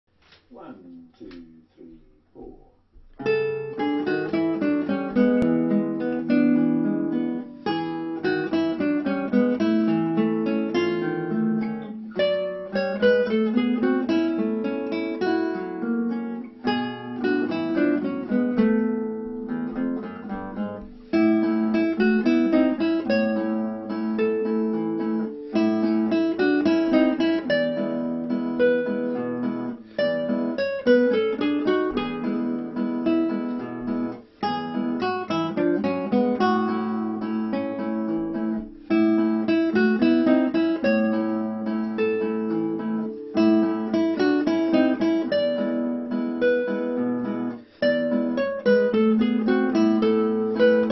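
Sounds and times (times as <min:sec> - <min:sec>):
classical guitar duet fingerpicked: 0:02.4 - 0:50.9.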